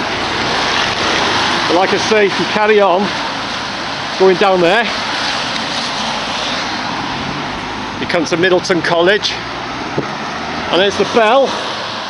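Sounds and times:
tyres hissing on wet road: 0:00.0 - 0:12.0.

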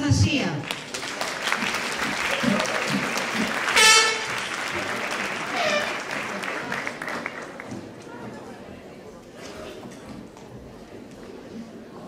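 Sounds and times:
audience applauding: 0:00.6 - 0:08.0.

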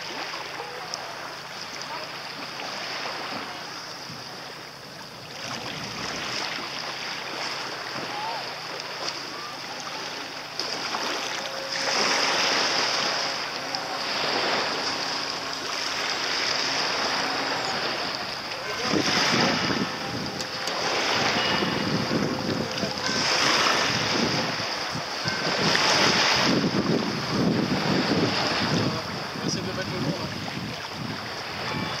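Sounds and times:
small waves washing in: 0:00.0 - 0:32.0
wind on microphone: 0:03.0 - 0:32.0.

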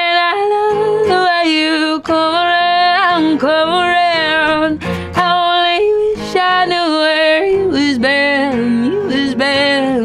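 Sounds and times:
strummed acoustic guitar: 0:00.0 - 0:10.0
woman singing yodel-like notes: 0:00.0 - 0:10.0.

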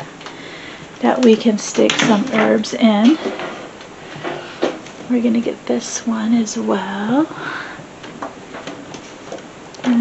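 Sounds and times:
wicker baskets rustling: 0:00.0 - 0:10.0
wicker baskets knocking: 0:01.0 - 0:04.9.

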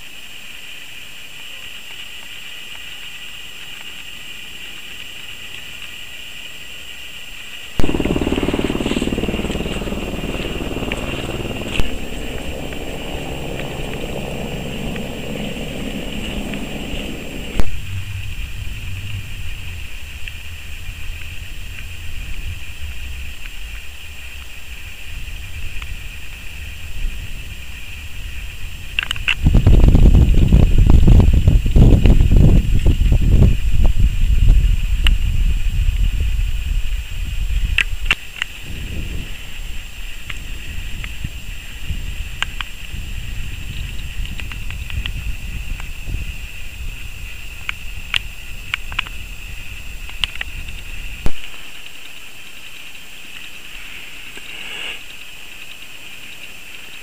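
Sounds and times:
faint high whine: 0:01.3 - 0:57.0
wind buffeting microphone: 0:07.8 - 0:51.4.

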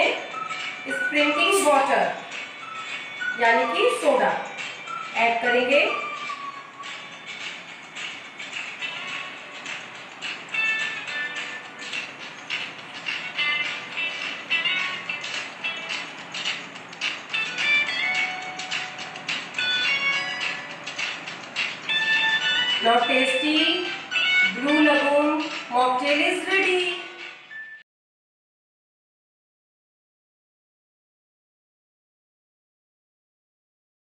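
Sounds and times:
light instrumental music: 0:00.0 - 0:27.8.

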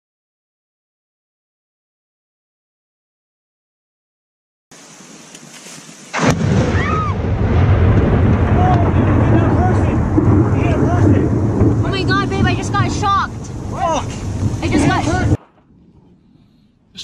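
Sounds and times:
lightning crack: 0:05.9 - 0:16.1
thunder rumbling: 0:06.1 - 0:17.0.

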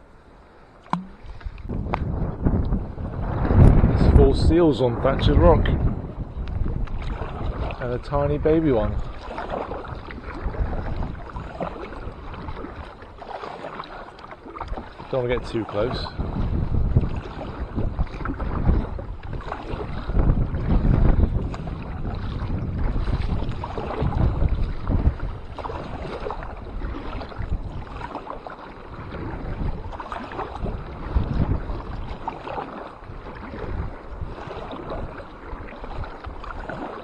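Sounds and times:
water sloshing against kayak: 0:00.0 - 0:37.0
wind buffeting microphone: 0:00.9 - 0:37.0.

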